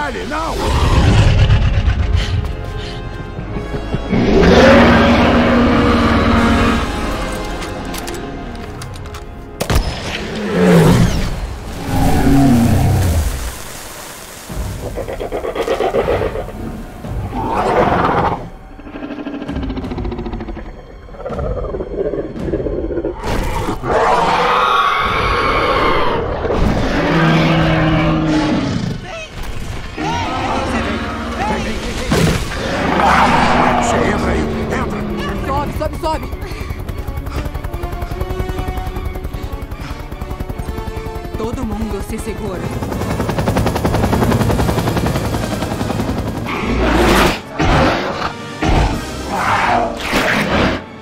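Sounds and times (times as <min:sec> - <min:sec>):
orchestral score: 0:00.0 - 0:51.0
dinosaur roaring: 0:00.6 - 0:02.6, 0:04.1 - 0:06.9, 0:11.8 - 0:13.3, 0:17.3 - 0:29.0, 0:32.5 - 0:35.2.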